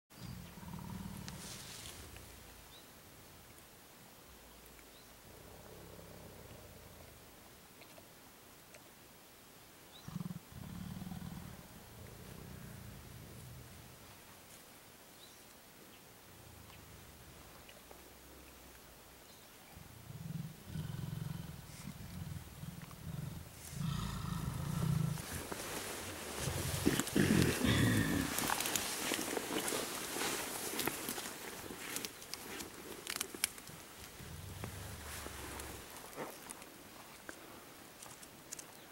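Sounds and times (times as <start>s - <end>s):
leaves rustling: 0.2s - 6.7s, 20.8s - 38.9s
gorilla rumbling grumble: 20.0s - 29.8s.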